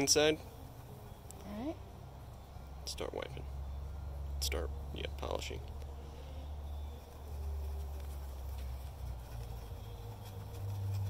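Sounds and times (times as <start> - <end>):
cloth rubbing on metal panel: 6.8 - 11.0.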